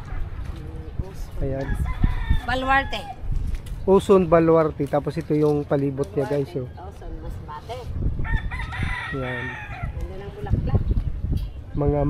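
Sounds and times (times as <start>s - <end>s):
rooster crowing: 1.6s - 3.2s, 8.2s - 10.0s.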